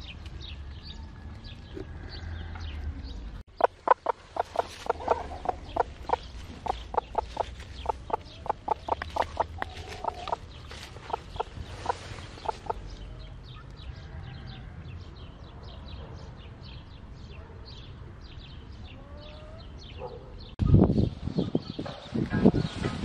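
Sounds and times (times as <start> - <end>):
hen clucking: 3.5 - 13.1.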